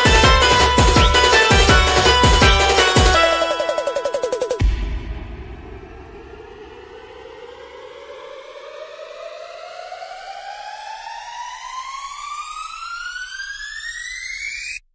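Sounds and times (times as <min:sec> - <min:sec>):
siren-like rising tone: 0:03.0 - 0:04.7, 0:05.6 - 0:14.8.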